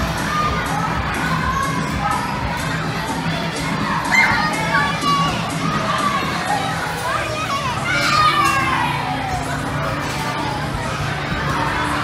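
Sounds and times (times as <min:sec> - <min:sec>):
children shouting and squealing: 0:00.0 - 0:12.0
children shrieking: 0:03.9 - 0:09.5.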